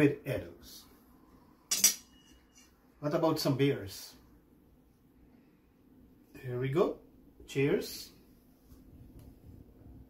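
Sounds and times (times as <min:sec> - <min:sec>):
faint ringing: 0:01.6 - 0:03.0
metal cutlery clattering on plate: 0:01.7 - 0:02.2.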